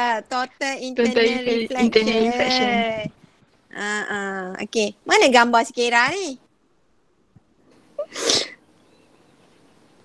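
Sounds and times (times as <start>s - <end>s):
person breathy burst: 8.0s - 8.6s.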